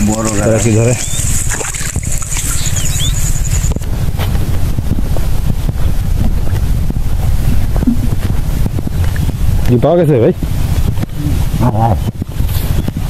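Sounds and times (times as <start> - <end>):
wind buffeting microphone: 0.0 - 13.0
faint high chirping: 2.3 - 3.8.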